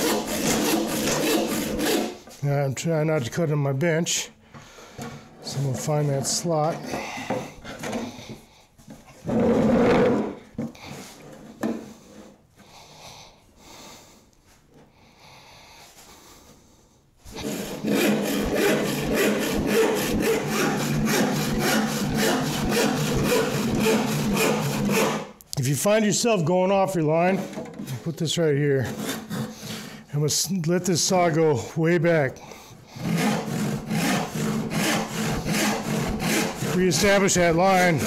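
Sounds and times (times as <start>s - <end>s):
hand saw cutting wood: 0.0s - 2.4s, 5.4s - 8.4s, 17.3s - 25.4s, 27.3s - 30.1s, 32.9s - 38.0s.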